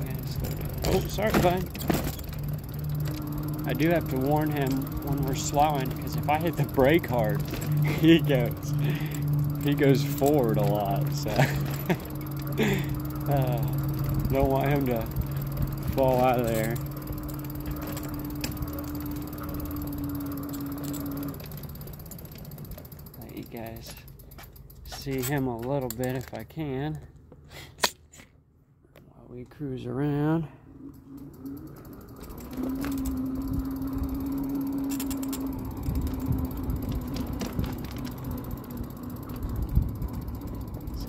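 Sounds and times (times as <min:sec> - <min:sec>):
electric bike motor whining: 0:00.0 - 0:25.5, 0:30.7 - 0:41.0
tyres rumbling on path: 0:00.0 - 0:25.8, 0:31.8 - 0:41.0
clicks and rattles: 0:00.0 - 0:26.6, 0:34.8 - 0:41.0
wind rumble: 0:33.2 - 0:41.0.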